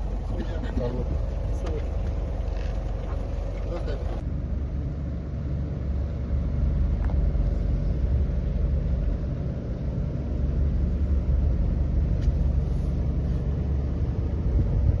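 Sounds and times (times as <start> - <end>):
motorboat engine droning: 0.0 - 15.0.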